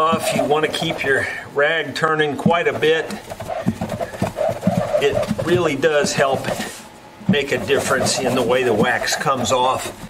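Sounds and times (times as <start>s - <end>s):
cloth rag rubbing guitar: 0.0s - 1.3s, 2.4s - 10.0s.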